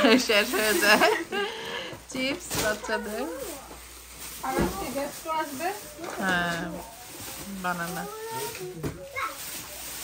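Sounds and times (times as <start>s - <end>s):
plastic bags rustling: 0.0s - 10.0s.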